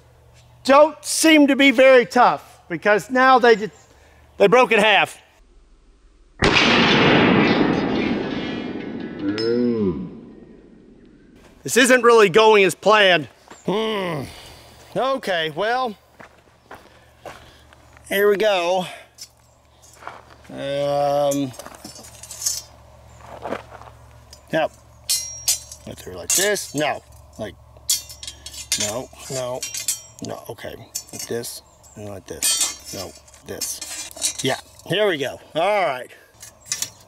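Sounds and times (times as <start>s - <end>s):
short rising and falling tone: 5.4s - 11.4s
slowed down pistol shot: 5.4s - 11.4s.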